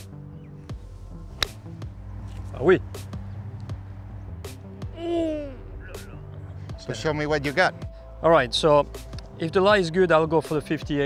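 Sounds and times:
background music: 0.0s - 11.0s
golf club striking ball: 1.3s - 3.8s.

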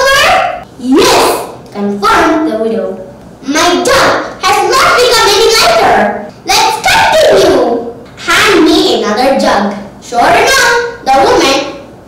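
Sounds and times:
child telling a story: 0.0s - 11.9s.

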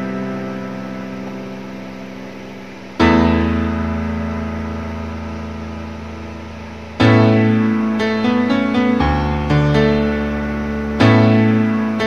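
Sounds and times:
sustained ballad chord: 0.0s - 12.0s.

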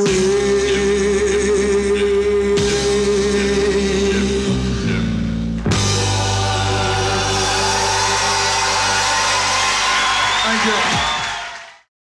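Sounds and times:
audience cheering and applause: 5.8s - 11.9s.

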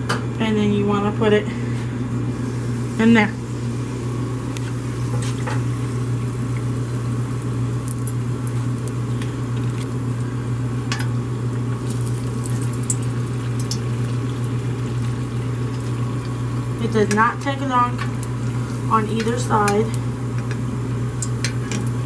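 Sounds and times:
food frying in hot oil: 2.3s - 22.0s.

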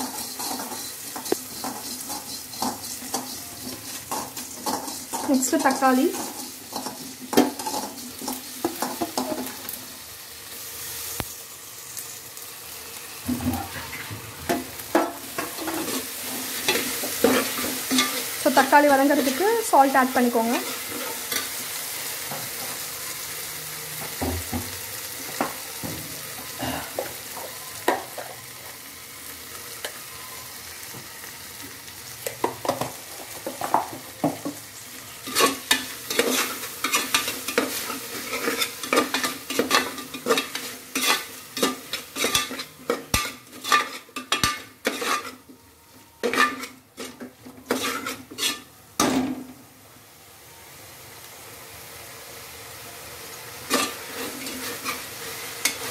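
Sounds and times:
spoon scraping a metal pot: 0.0s - 9.5s, 15.0s - 18.6s, 35.2s - 45.5s, 46.2s - 48.7s
vegetables sizzling in a pot: 0.0s - 55.9s.

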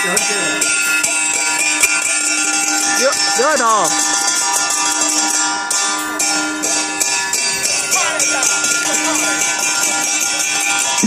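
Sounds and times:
gongs ringing: 0.0s - 11.0s.

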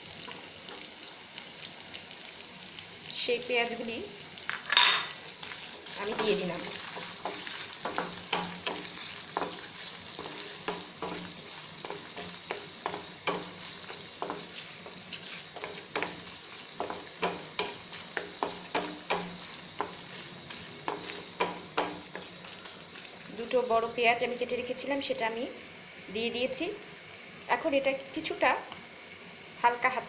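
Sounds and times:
onions sizzling in oil: 0.0s - 30.0s
spatula scraping and knocking pan: 6.0s - 23.1s.

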